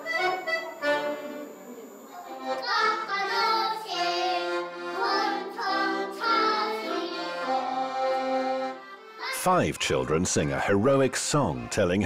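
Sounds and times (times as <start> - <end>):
accordion playing held chords: 0.0 - 12.0.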